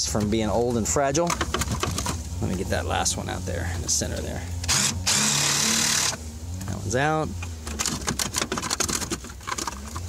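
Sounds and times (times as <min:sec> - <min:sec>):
plastic panel clicking and rattling: 0:01.2 - 0:02.2, 0:07.6 - 0:10.0.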